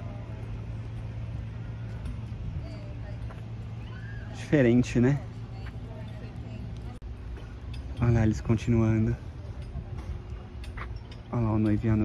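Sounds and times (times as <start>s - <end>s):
faint distant voices: 0.0s - 12.0s
low outdoor hum: 0.0s - 12.0s.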